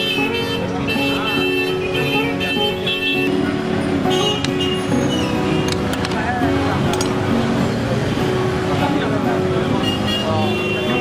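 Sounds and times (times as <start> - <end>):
music playing: 0.0 - 11.0
road traffic: 0.0 - 11.0
people talking: 8.6 - 11.0.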